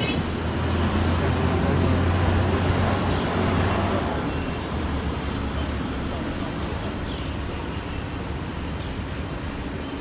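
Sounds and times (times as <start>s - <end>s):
low rumble of road traffic: 0.0s - 10.0s.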